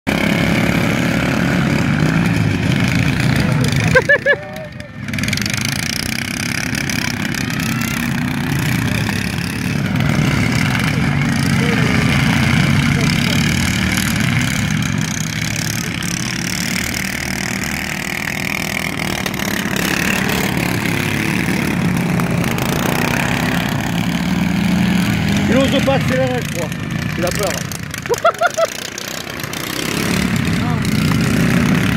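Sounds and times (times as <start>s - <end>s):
lawn mower engines racing: 0.1s - 31.9s.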